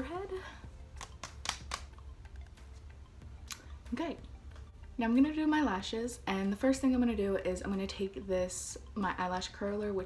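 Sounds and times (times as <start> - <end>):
low steady hum: 0.0 - 10.0
hands tapping on face: 0.9 - 2.1.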